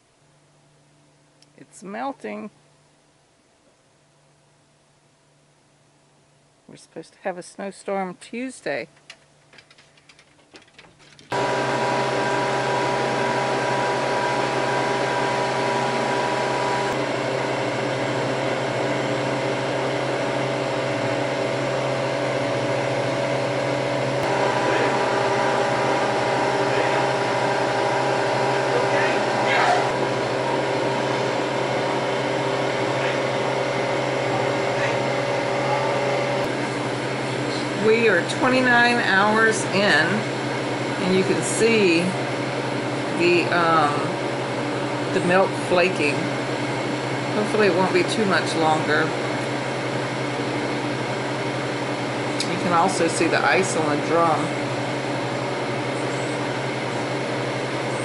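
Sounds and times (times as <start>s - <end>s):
freeze dryer humming: 5.8s - 58.0s.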